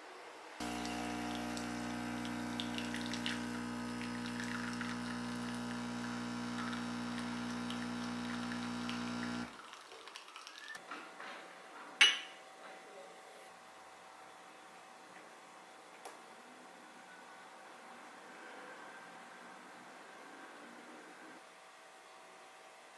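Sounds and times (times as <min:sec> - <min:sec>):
espresso machine pump buzzing: 0:00.6 - 0:09.5
espresso trickling: 0:00.6 - 0:09.5
glass clinking: 0:12.0 - 0:12.4.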